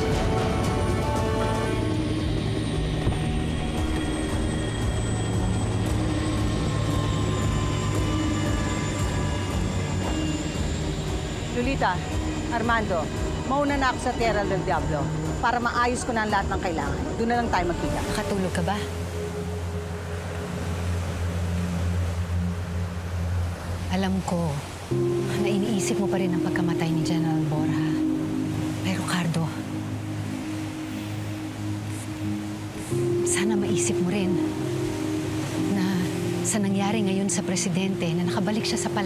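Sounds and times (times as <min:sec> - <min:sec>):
helicopter engine and rotor hum: 0:00.0 - 0:20.5
quiet background music: 0:00.0 - 0:39.0.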